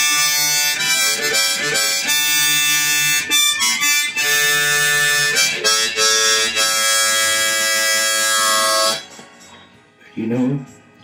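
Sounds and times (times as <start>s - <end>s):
harmonica held chord: 0.0s - 9.2s.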